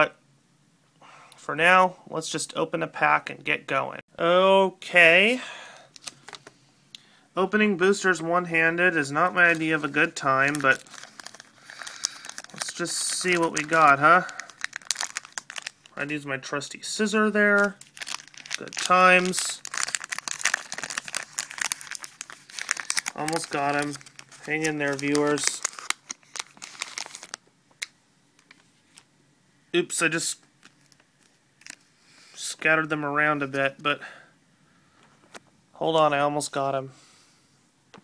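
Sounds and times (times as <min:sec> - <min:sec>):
foil wrapper crinkling: 0:09.2 - 0:16.0, 0:17.4 - 0:29.0, 0:30.6 - 0:31.9.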